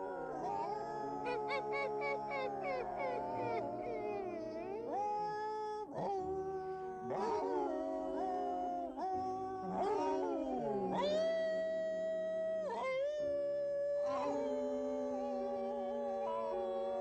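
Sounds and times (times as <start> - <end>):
dogs howling together: 0.0 - 5.3, 5.9 - 11.4, 14.0 - 17.0.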